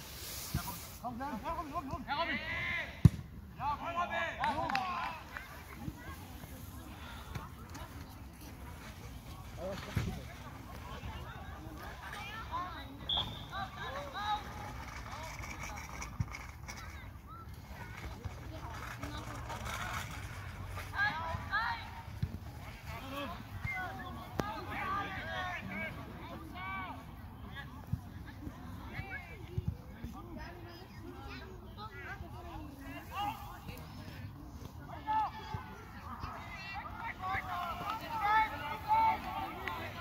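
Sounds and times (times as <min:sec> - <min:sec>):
players shouting: 0:36.7 - 0:40.0.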